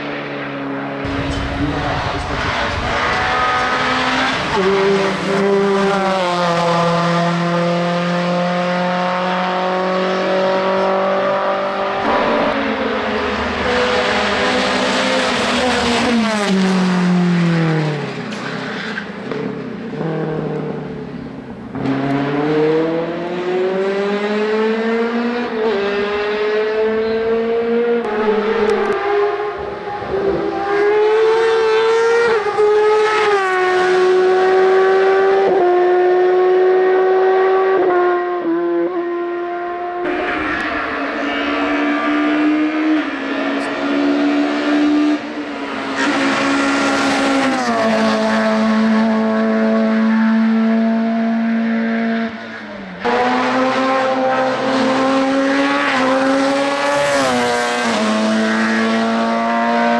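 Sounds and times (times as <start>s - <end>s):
race car engines at full throttle: 0.0s - 59.9s.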